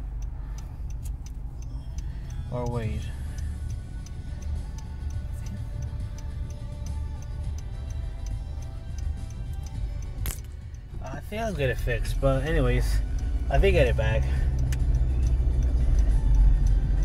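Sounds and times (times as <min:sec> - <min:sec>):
car turn signal ticking: 0:00.0 - 0:17.0
faint music: 0:00.0 - 0:17.0
low car rumble: 0:00.0 - 0:17.0.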